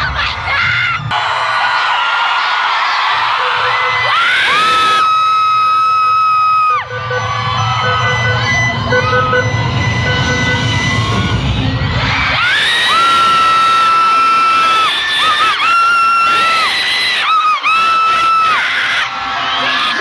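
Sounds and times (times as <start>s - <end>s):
loud bass-heavy music: 0.0s - 1.5s, 5.8s - 15.2s
crowd screaming and cheering: 0.0s - 20.0s
shrill high scream: 0.6s - 9.3s, 12.1s - 20.0s.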